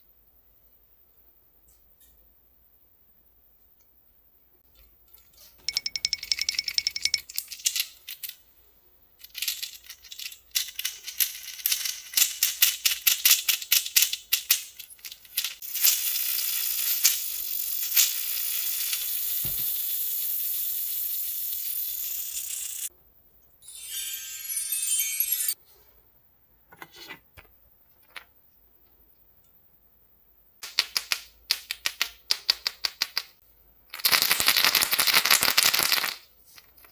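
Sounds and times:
plastic toys rattling: 5.6 - 8.4, 9.2 - 22.9.

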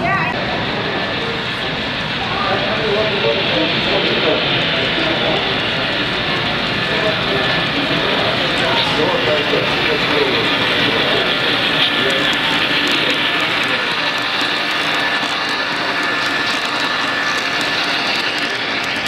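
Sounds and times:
crowd chatter: 0.0 - 19.0
model train rumbling on track: 0.0 - 19.0.

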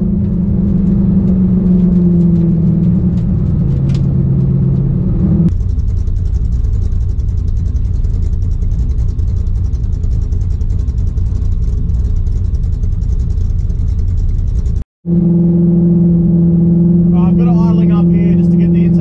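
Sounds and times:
engine drone inside car: 0.0 - 19.0
engine idling rough rumble: 0.0 - 19.0.

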